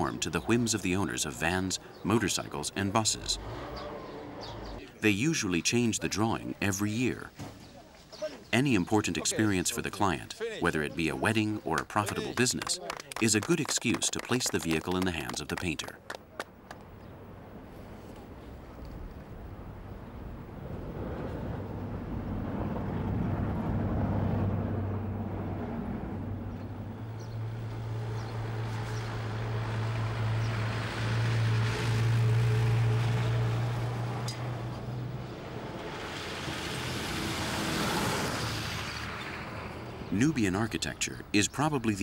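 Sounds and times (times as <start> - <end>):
tyres on sandy track: 0.0 - 42.0
vehicle engine humming: 8.5 - 18.2, 21.1 - 42.0.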